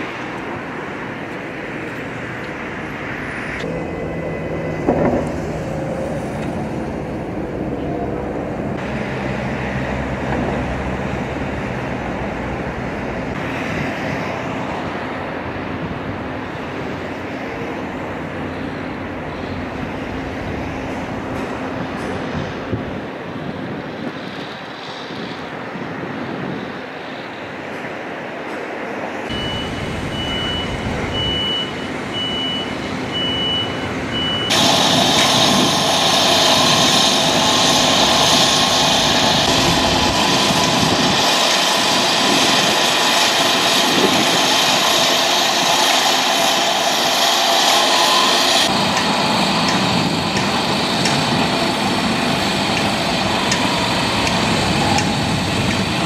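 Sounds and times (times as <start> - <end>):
construction machinery running: 0.0 - 56.0
reversing alarm beeping: 29.3 - 37.5, 47.0 - 48.7.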